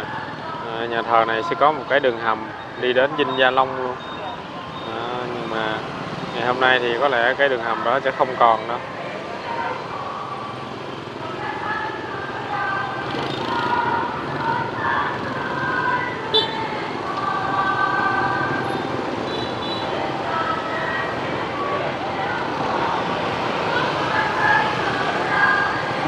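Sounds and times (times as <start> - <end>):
motorbike traffic: 0.0 - 26.0
people's voices: 0.0 - 26.0.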